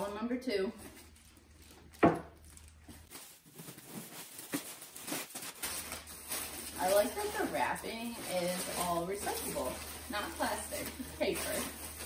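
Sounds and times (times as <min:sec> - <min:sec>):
paper packing rustling and crinkling: 0:00.0 - 0:12.0.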